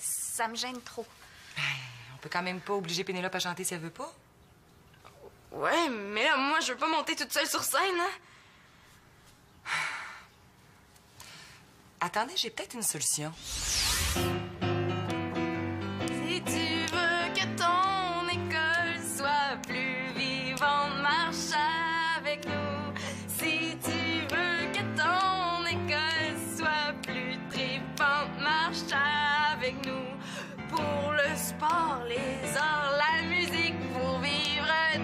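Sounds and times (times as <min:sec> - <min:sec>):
piano accompaniment: 0:14.1 - 0:35.0
woman singing: 0:16.0 - 0:35.0.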